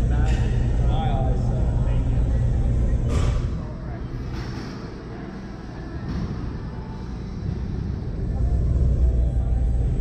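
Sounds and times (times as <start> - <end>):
faint indistinct voices: 0.0 - 10.0
steady low rumble: 0.0 - 10.0.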